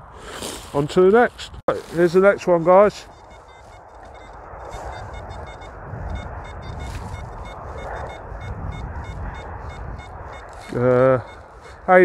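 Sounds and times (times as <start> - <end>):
metal detector high beeps: 2.2 - 12.0
low rumble: 3.1 - 11.9.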